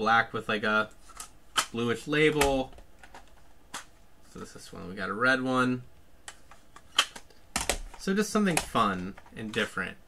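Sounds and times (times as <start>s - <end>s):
plastic cassette clicks and clacks: 1.1s - 1.8s, 6.3s - 9.8s.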